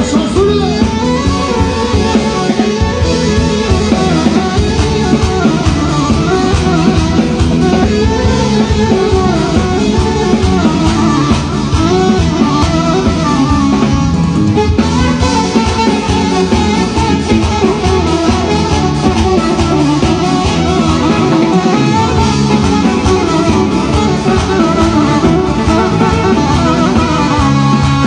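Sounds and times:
bass line: 0:00.0 - 0:28.0
drum kit with cymbals: 0:00.0 - 0:28.0
electronic keyboards: 0:00.0 - 0:28.0.

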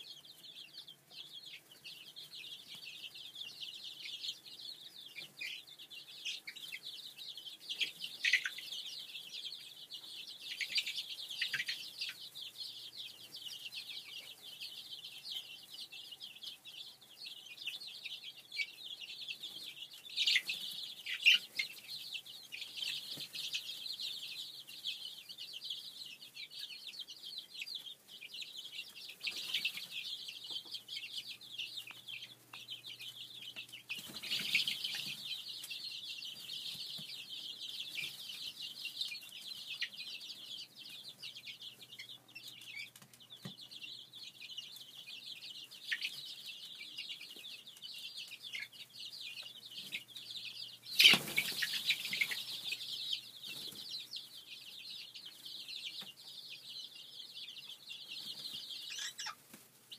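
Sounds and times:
chicks peeping: 0:00.0 - 0:59.9.

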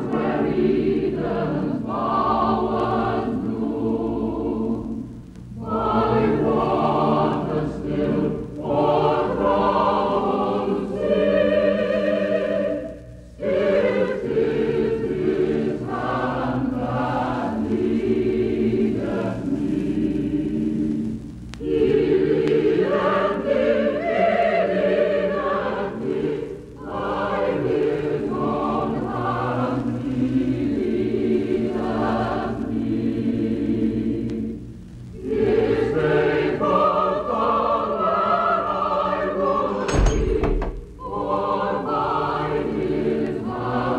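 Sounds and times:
choir singing: 0:00.0 - 0:43.9.

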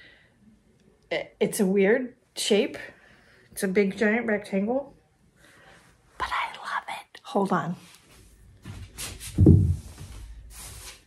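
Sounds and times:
low thump: 0:09.4 - 0:10.2.

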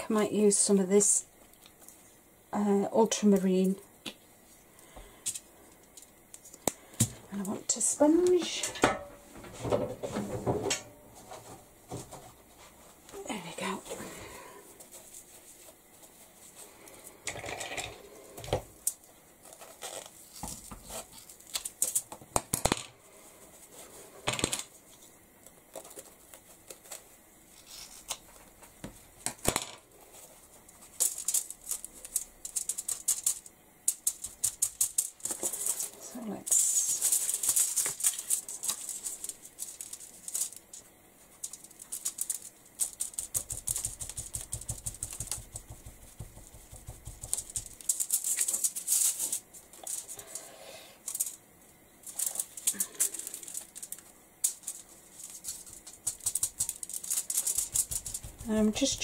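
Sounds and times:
sponge tapping through stencil: 0:43.2 - 0:47.8, 0:57.5 - 0:59.0.

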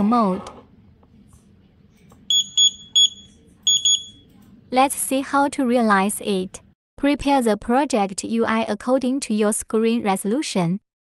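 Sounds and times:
short high beeps: 0:02.3 - 0:04.2.

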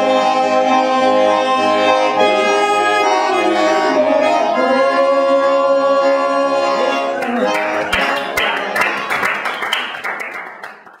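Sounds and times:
audience applause: 0:07.2 - 0:11.0.

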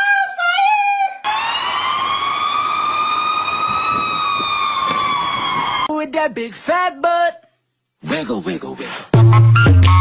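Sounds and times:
siren-like wail: 0:01.2 - 0:05.9.

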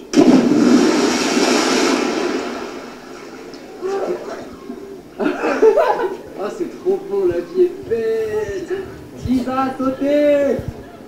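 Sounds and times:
big splash of water: 0:00.0 - 0:04.0.

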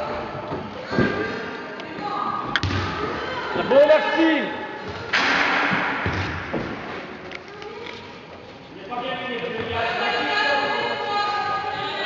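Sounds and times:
basketball thudding: 0:02.6 - 0:03.1.

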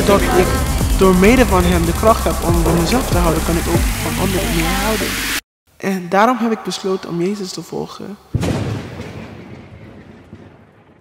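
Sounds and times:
deep cinematic boom rumbling: 0:00.0 - 0:05.4.

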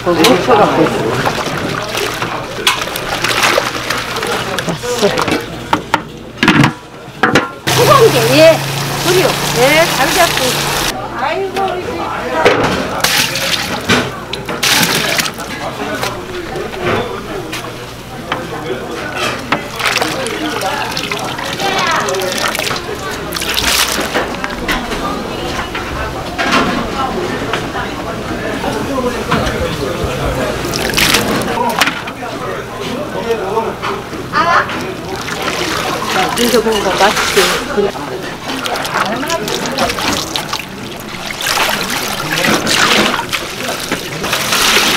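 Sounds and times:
water sloshing in pot: 0:00.2 - 0:05.6, 0:07.7 - 0:11.0, 0:13.0 - 0:16.1, 0:19.4 - 0:24.6, 0:30.6 - 0:31.8, 0:34.8 - 0:44.9
water splashes: 0:00.5 - 0:05.5, 0:07.7 - 0:10.9, 0:13.0 - 0:16.2, 0:19.6 - 0:24.6, 0:30.6 - 0:31.6, 0:34.8 - 0:44.9.

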